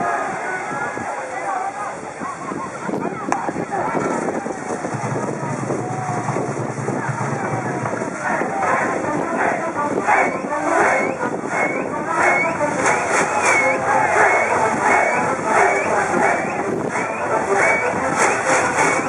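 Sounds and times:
crowd chanting in rhythm: 7.0s - 19.0s.

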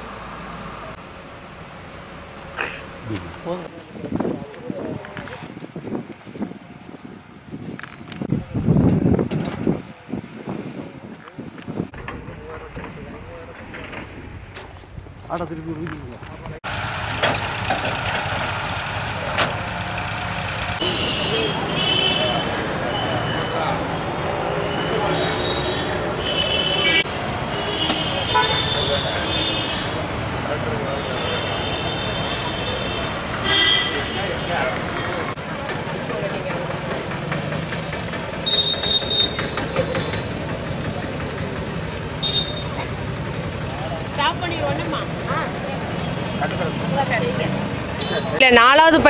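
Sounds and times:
traffic noise: 0.0s - 49.0s
voices: 2.4s - 6.8s, 10.8s - 16.6s, 20.7s - 49.0s
engines running: 16.1s - 20.8s, 34.6s - 49.0s.

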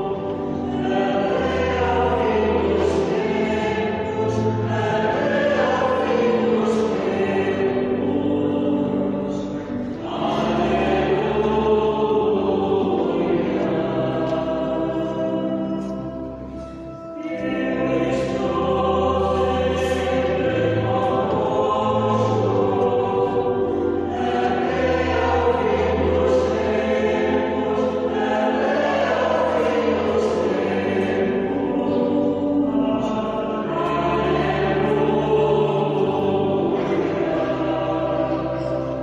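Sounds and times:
choir singing sacred piece: 0.0s - 39.0s.

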